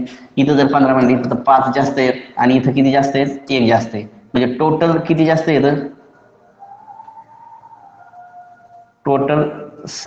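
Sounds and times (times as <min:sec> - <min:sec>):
faint high steady tone: 0:06.1 - 0:09.1.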